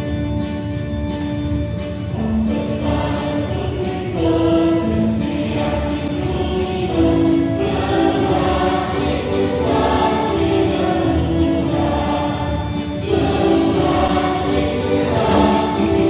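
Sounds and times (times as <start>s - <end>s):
choir singing long held notes: 2.5s - 16.0s.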